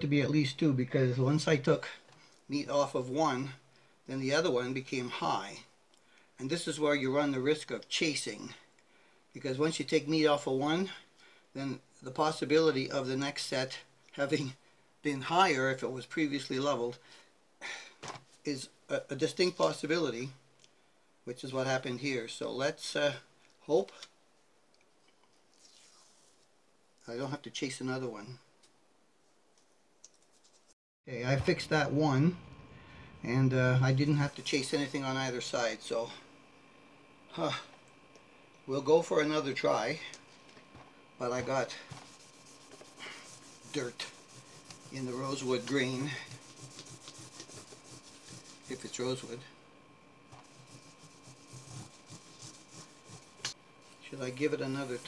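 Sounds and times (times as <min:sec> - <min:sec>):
cloth rubbing guitar fretboard: 0:41.3 - 0:49.4.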